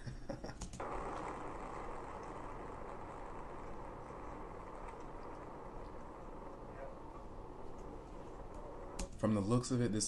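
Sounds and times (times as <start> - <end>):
person laughing: 0.0 - 0.6.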